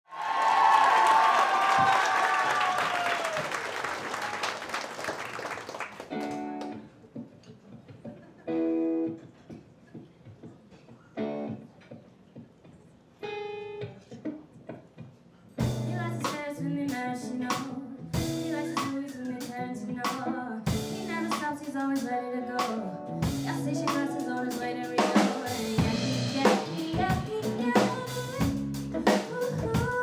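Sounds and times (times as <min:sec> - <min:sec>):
audience applause and cheering: 0:00.0 - 0:06.8.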